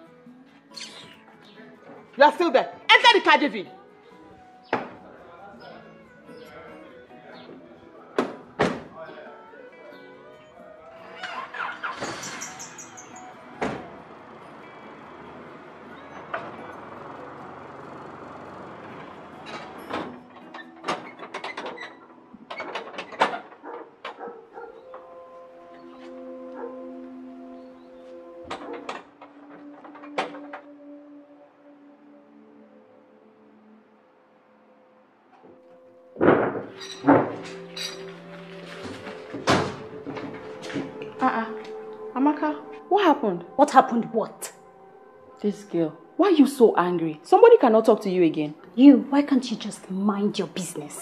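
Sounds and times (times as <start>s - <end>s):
background music: 0.0s - 51.0s
car doors shutting: 11.3s - 14.1s.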